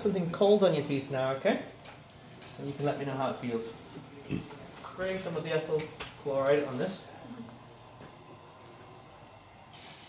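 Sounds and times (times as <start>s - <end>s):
aerosol spray hiss: 9.7s - 10.0s.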